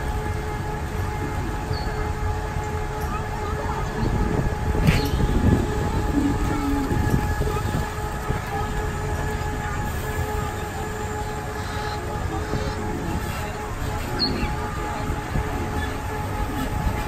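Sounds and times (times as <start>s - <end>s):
monorail train rumbling: 0.0s - 17.0s.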